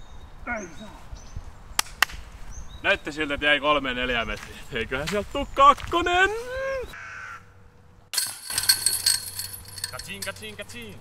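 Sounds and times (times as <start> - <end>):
disc hitting metal chains: 8.2 - 10.6.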